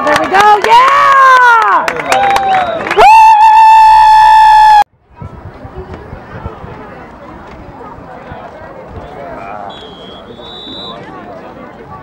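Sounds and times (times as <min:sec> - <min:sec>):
woman cheering: 0:00.6 - 0:04.8
faint crowd chatter: 0:04.9 - 0:12.0.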